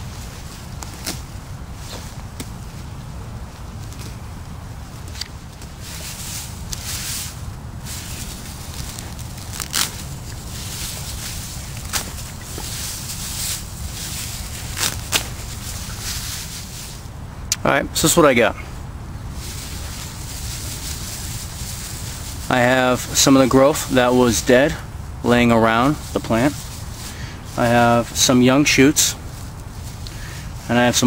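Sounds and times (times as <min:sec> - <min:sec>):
dry grass rustling and crackling: 0:00.0 - 0:17.3, 0:18.0 - 0:31.0
steady low rumble: 0:00.0 - 0:31.0
stalks snapping: 0:08.8 - 0:10.5, 0:11.6 - 0:12.8, 0:14.6 - 0:15.6.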